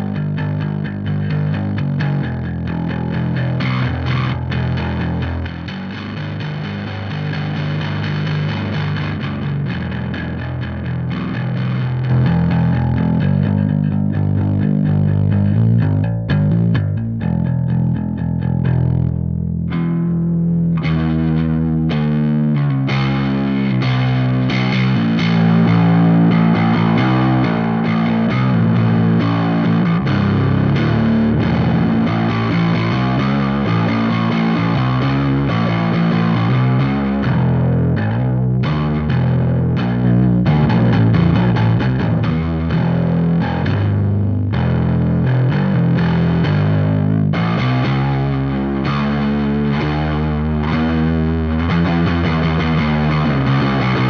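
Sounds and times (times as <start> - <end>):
distorted electric bass riff: 0.0 - 54.0.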